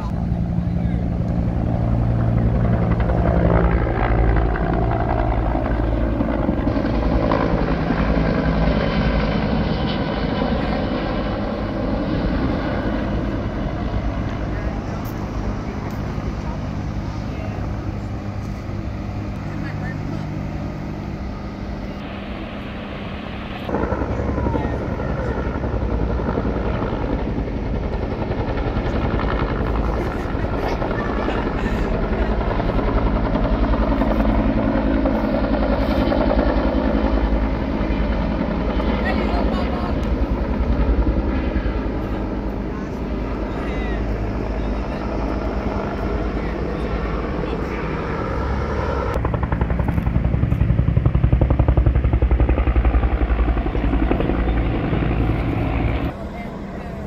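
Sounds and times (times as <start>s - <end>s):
helicopter rotor beating: 0.0s - 57.0s.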